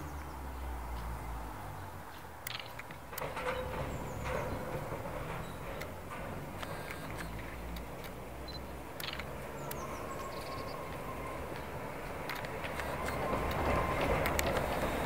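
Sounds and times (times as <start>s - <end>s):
tram rumbling on track: 0.0s - 15.0s
sharp clicks: 2.1s - 3.4s, 6.6s - 10.6s, 12.2s - 14.9s.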